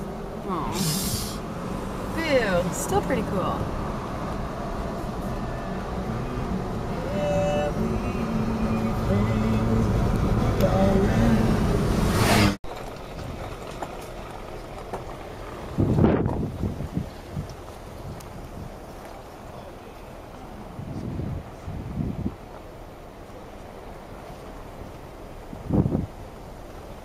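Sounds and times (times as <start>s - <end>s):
engine running: 0.0s - 27.0s
outdoor noise: 0.0s - 27.0s.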